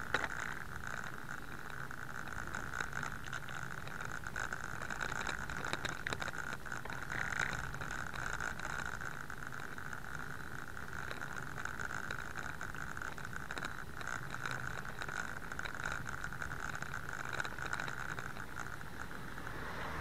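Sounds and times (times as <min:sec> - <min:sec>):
bicycle tyre and road noise: 0:00.0 - 0:20.0.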